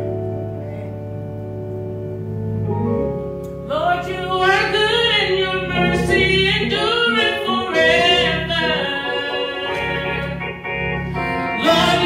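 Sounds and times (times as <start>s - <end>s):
church keyboard chords: 0.0s - 12.0s
woman singing gospel solo: 3.7s - 10.5s, 11.4s - 12.0s.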